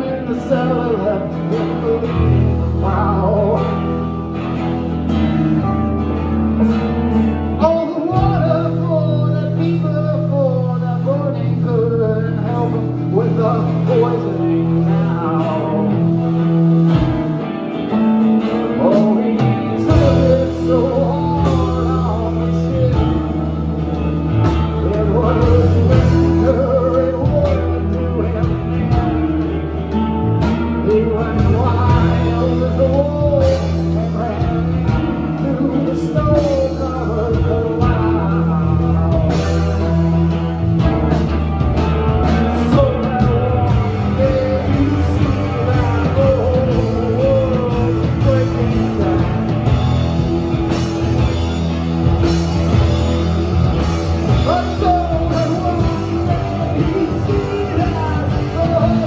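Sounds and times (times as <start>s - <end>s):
drums: 0.0s - 59.0s
live band playing: 0.0s - 59.0s
man singing: 0.0s - 59.0s
strummed acoustic guitar: 0.0s - 59.0s.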